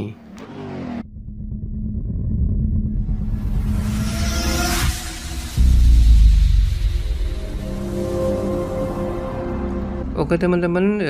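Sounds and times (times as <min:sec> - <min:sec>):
car engine rumbling: 0:00.1 - 0:09.1.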